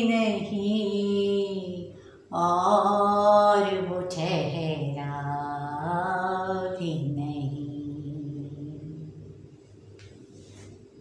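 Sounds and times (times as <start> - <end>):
woman singing long held notes: 0.0 - 9.4.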